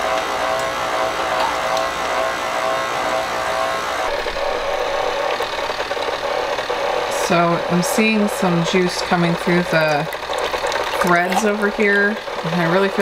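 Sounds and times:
stand mixer motor humming: 0.0 - 13.0.

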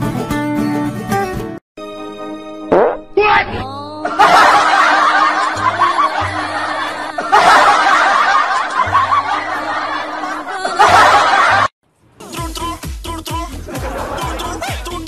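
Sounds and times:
background music: 0.0 - 15.0
high rapid snickering laugh: 7.2 - 9.4
music with steady beat: 12.2 - 15.0.

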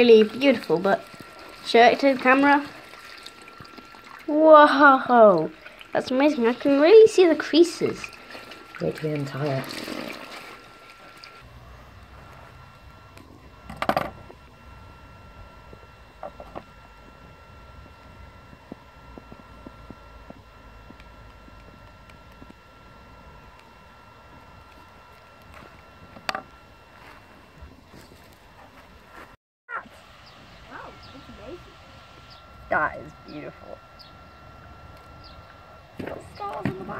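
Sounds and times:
faint high whine: 0.0 - 36.9.

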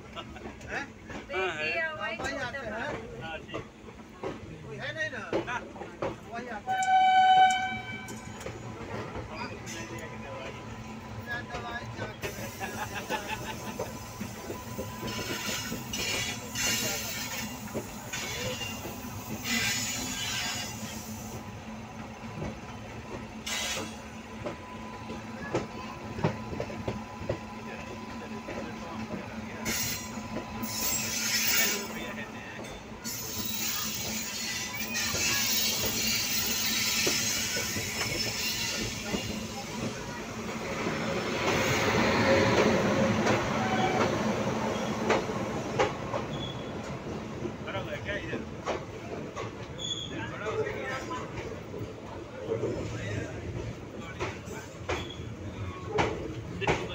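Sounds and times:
train wheels rumbling on rails: 0.0 - 56.9.

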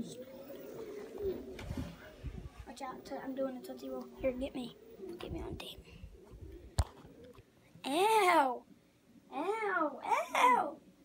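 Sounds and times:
faint low rumble and murmur: 0.0 - 8.7.

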